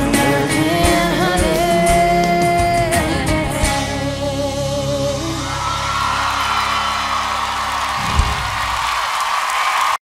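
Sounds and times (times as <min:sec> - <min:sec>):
audience whooping and cheering: 0:05.3 - 0:10.0.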